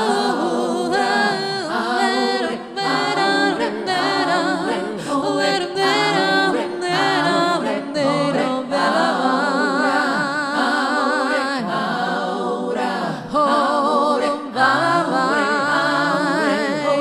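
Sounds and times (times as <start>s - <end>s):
woman singing layered harmonies: 0.0s - 17.0s.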